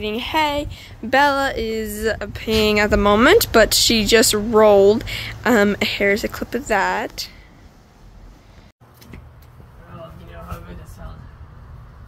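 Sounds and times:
woman's voice: 0.0s - 7.4s.

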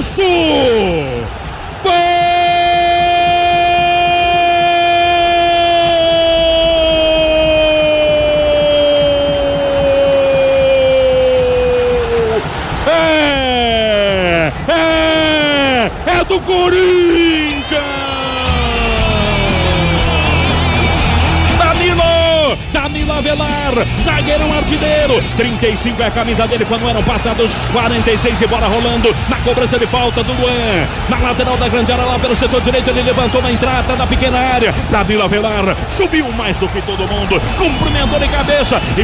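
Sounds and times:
shouts falling in pitch: 0.0s - 25.6s
music jingle with beat: 2.1s - 16.2s.

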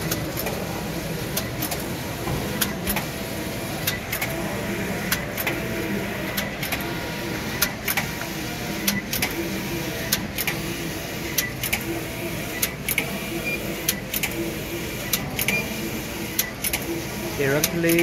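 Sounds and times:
machine clicks: 0.0s - 0.7s, 1.3s - 1.9s, 3.8s - 4.4s, 6.3s - 6.9s, 7.6s - 8.2s, 8.8s - 9.4s, 10.0s - 10.7s, 11.3s - 13.2s, 13.8s - 14.4s, 15.0s - 15.7s, 16.3s - 18.0s.

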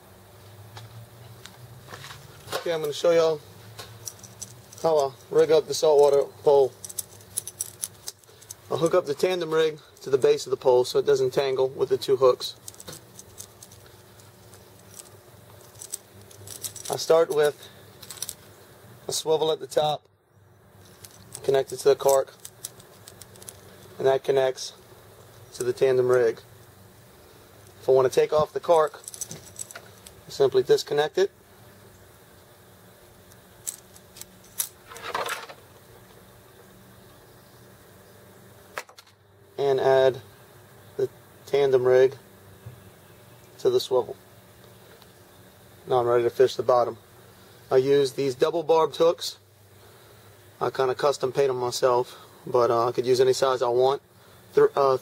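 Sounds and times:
fishing tackle clicks and rattles: 6.8s - 8.9s, 12.6s - 18.4s, 20.9s - 23.6s.

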